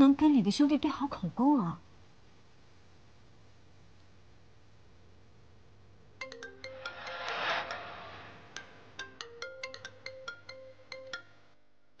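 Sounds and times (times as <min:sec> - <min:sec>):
marimba-like phone ringtone: 0:06.2 - 0:07.3, 0:08.9 - 0:11.4
swell of noise: 0:06.2 - 0:09.2.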